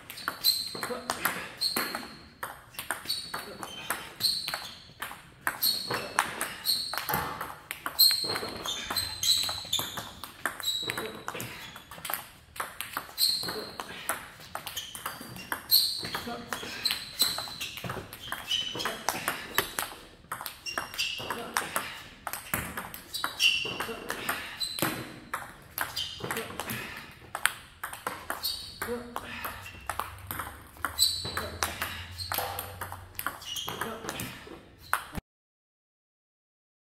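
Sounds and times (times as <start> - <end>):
table tennis ball hitting paddles: 0.0 - 35.2
table tennis ball bouncing on table: 0.1 - 26.6, 27.3 - 35.2.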